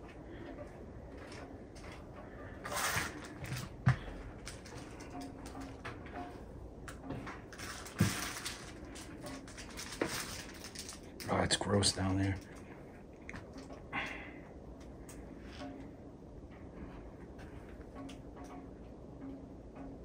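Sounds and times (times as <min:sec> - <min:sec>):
scraping rustle: 0:07.1 - 0:11.4.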